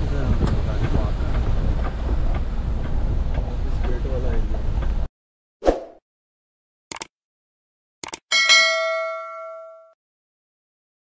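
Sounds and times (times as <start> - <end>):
mouse clicks: 6.9 - 7.1
bright bell ding: 8.3 - 10.0.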